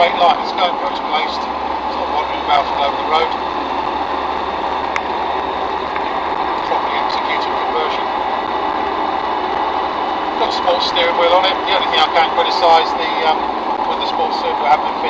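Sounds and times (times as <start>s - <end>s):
diesel engine running: 0.0s - 15.0s.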